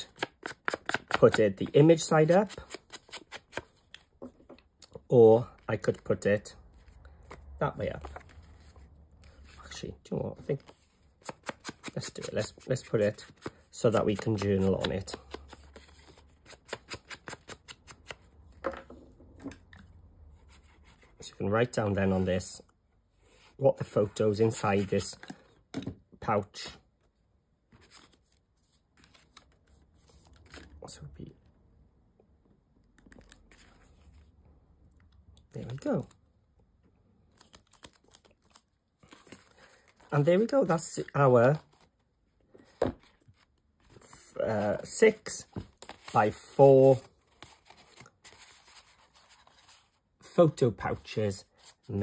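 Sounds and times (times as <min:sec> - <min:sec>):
card tapping and rustling on paper: 0:00.0 - 0:01.9.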